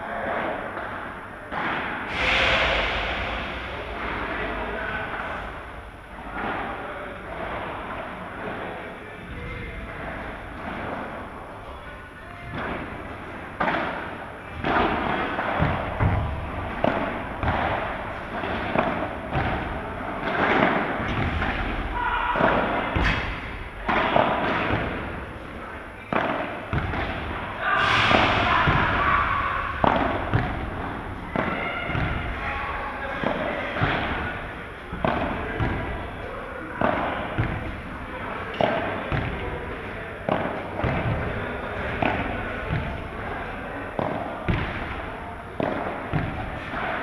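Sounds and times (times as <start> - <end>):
voices in background: 0.0 - 47.0
rackets striking balls: 12.4 - 47.0.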